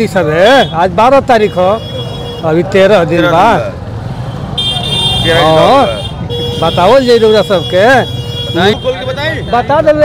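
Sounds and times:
busy street noise: 0.0 - 10.0.

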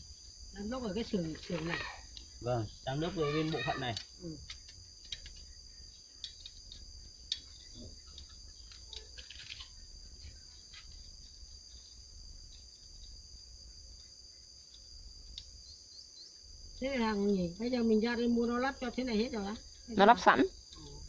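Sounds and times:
insects droning: 0.0 - 21.0.

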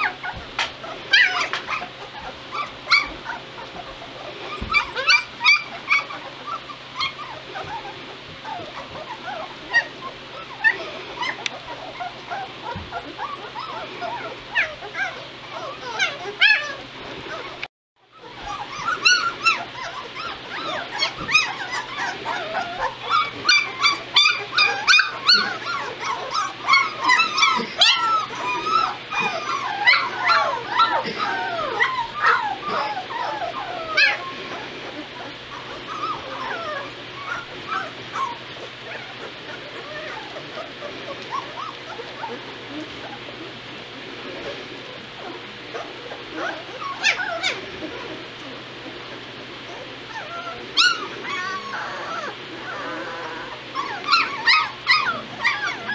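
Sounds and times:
puppies whimpering and yipping: 0.0 - 55.9.

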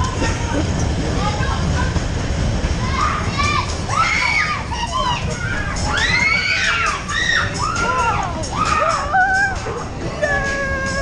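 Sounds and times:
steady low rumble: 0.0 - 11.0
people shouting and calling out: 2.8 - 11.0.

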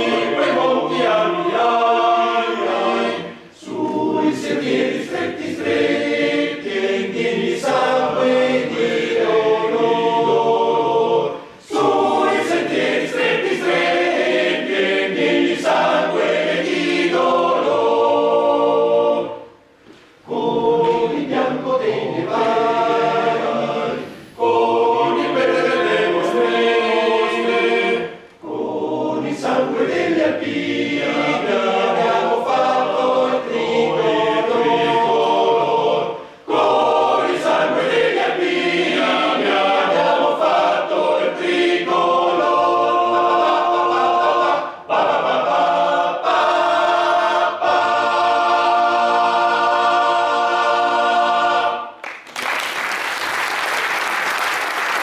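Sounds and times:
male voice choir singing: 0.0 - 19.4, 20.3 - 52.0.

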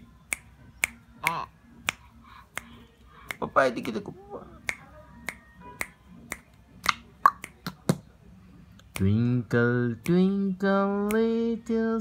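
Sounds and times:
finger snapping: 0.2 - 4.0, 4.6 - 8.1, 8.8 - 9.2, 10.0 - 10.3, 11.0 - 11.4.

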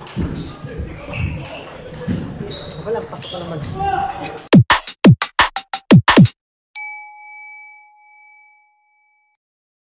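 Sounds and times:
notification bell ding: 6.8 - 9.4.

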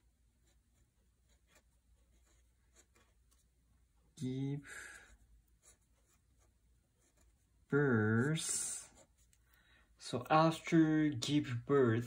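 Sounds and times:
felt-tip pen scratching on paper: 0.4 - 3.4.

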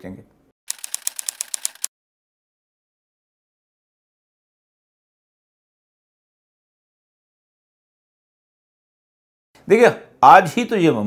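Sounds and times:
rapid mechanical clicks: 0.7 - 1.9.

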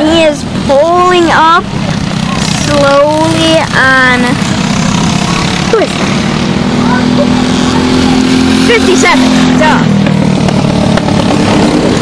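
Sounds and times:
kart engines drone: 0.0 - 12.0.

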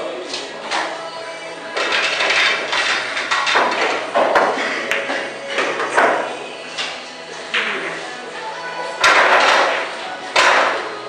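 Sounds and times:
pool balls clacking: 0.3 - 11.0.

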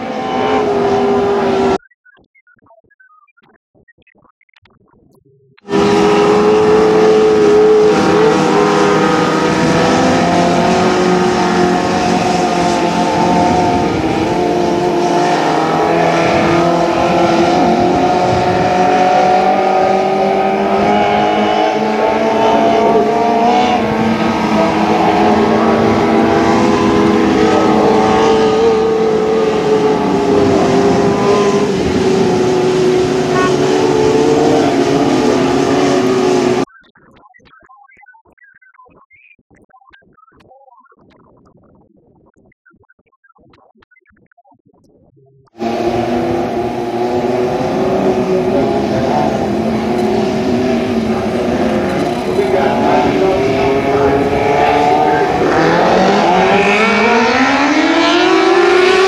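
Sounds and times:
racing car engines droning: 0.0 - 1.8, 5.6 - 36.7, 45.6 - 59.0.

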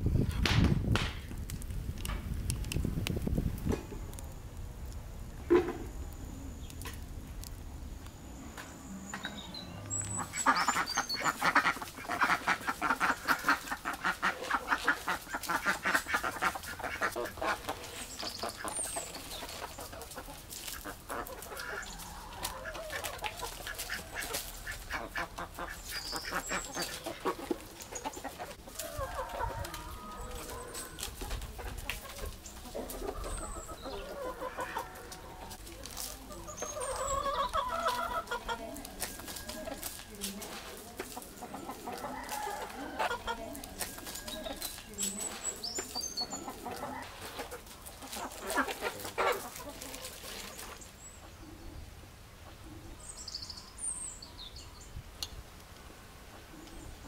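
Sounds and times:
ducks quacking: 10.1 - 29.8, 31.5 - 35.6, 36.3 - 38.9, 45.8 - 50.4.

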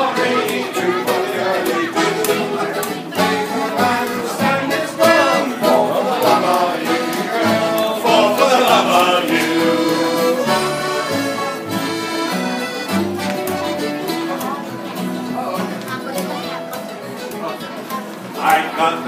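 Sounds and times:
plucked upright bass: 0.0 - 18.7
accordion melody: 0.0 - 19.0
strummed acoustic guitar: 0.0 - 19.0.

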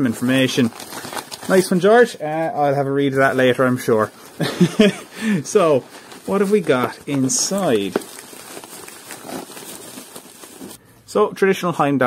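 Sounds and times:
bubble wrap crinkling: 0.0 - 10.8.

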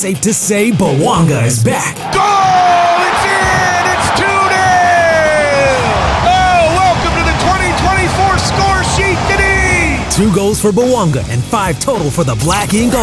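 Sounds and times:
commentator shouting: 0.0 - 13.0
stadium crowd noise: 2.0 - 10.9.

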